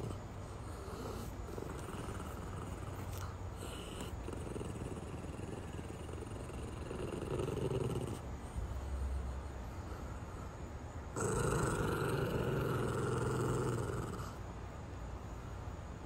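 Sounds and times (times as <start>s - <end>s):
small dog growling low: 0.0s - 8.2s, 11.1s - 14.4s.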